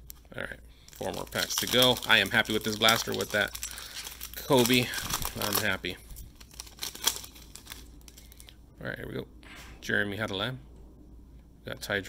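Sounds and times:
foil wrapper tearing and crinkling: 0.9 - 8.5.

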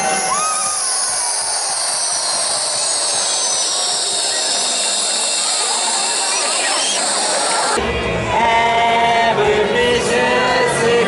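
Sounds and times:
balloon whistles gliding in pitch: 0.0 - 7.8.

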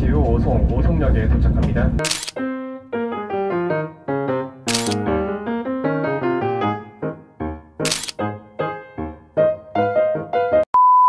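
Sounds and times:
camera shutter click: 2.0 - 2.4, 4.7 - 5.1, 7.8 - 8.2
light keyboard melody: 2.0 - 10.7.

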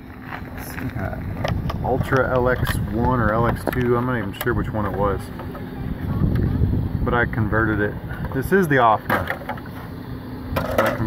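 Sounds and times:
wind rumble on microphone: 0.4 - 8.6.

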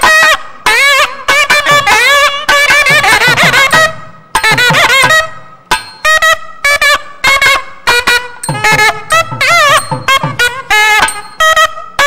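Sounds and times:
nadaswaram melody: 0.0 - 12.0
sharp drum strokes: 8.4 - 11.5.

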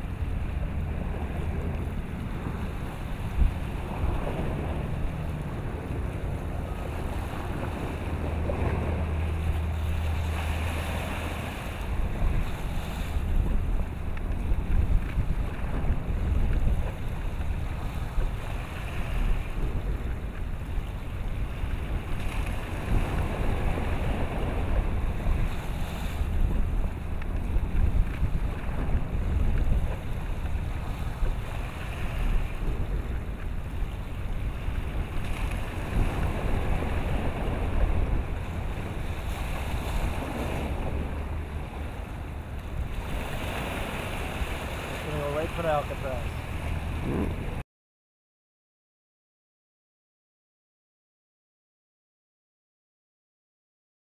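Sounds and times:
waves washing: 0.0 - 47.6
wind buffeting microphone: 0.0 - 47.6.

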